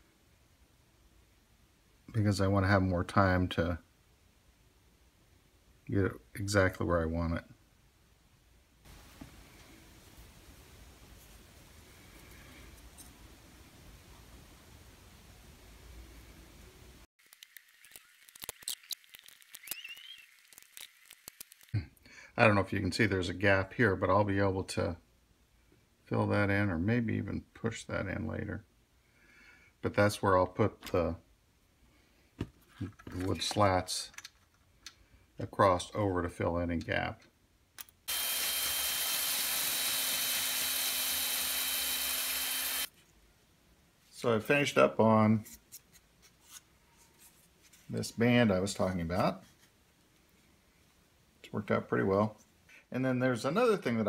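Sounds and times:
clicks of small parts handled: 0:32.7 - 0:35.0
cordless drill whining: 0:38.1 - 0:42.9.

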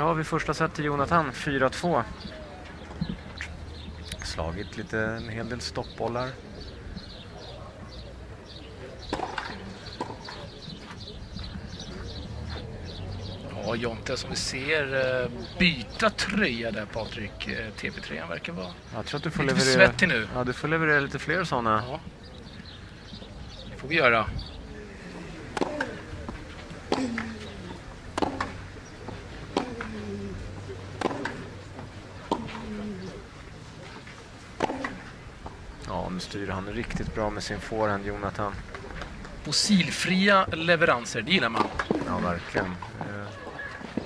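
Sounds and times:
small birds chirping: 0:00.0 - 0:44.0
ball knocking on clay court: 0:09.1 - 0:10.4, 0:25.5 - 0:30.2, 0:31.0 - 0:31.5, 0:32.2 - 0:32.8, 0:34.6 - 0:35.1
tennis racket hitting ball: 0:25.4 - 0:30.2, 0:30.9 - 0:31.6, 0:32.2 - 0:32.8, 0:34.6 - 0:35.2.

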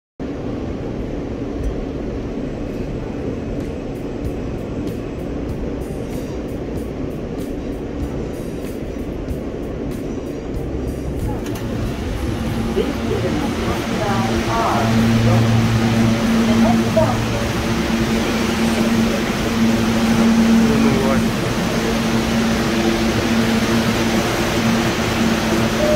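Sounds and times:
subway train rumble and hum: 0:00.2 - 0:25.9
music playing: 0:06.7 - 0:25.9.

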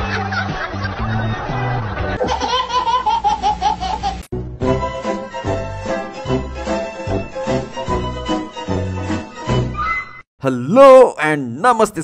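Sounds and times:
baby laughing: 0:02.2 - 0:04.3
background music: 0:04.4 - 0:10.2.

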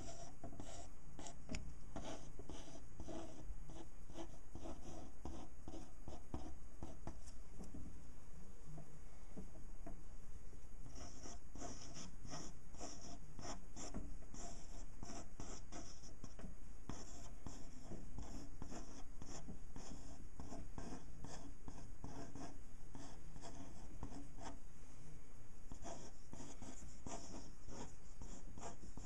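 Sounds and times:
pen scratching on paper: 0:00.0 - 0:07.2, 0:10.8 - 0:24.6, 0:25.7 - 0:29.0.

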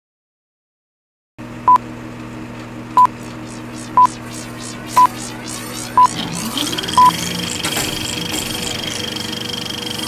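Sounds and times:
high-pitched countdown beeps: 0:03.0 - 0:09.2.

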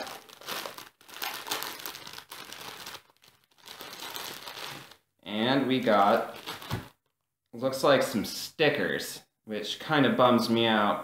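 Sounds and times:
plastic wrapper crinkling: 0:00.0 - 0:05.1, 0:06.1 - 0:07.2.

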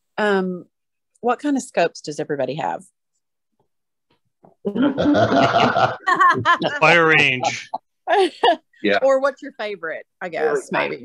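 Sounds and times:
person laughing: 0:04.7 - 0:08.6.

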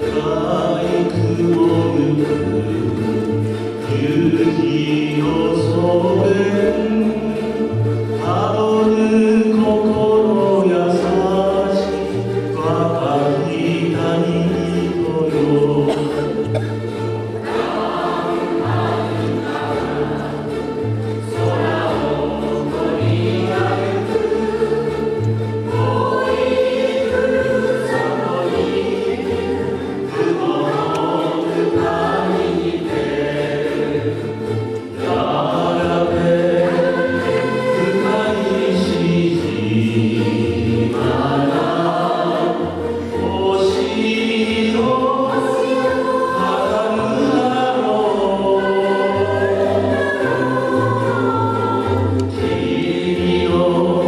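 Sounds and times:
group of voices singing: 0:00.0 - 0:54.0
ukulele ensemble playing: 0:00.0 - 0:54.0.

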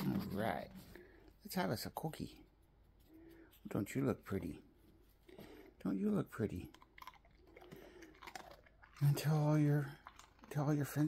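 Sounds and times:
dog chewing crunchy treat: 0:06.5 - 0:11.0.

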